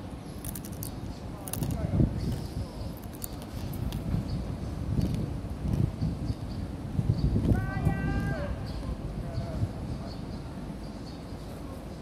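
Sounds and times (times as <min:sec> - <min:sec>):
distant person calling out: 0:07.5 - 0:08.7.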